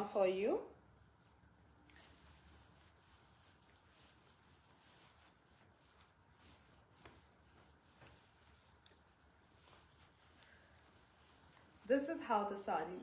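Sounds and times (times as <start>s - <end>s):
fabric rustles and ticks: 0.0s - 13.0s.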